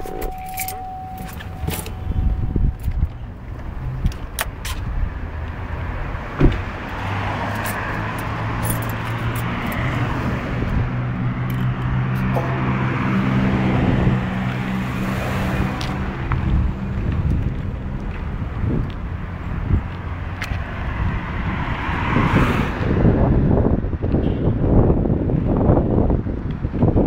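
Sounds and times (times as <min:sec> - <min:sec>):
car engine hum: 0:00.0 - 0:24.0.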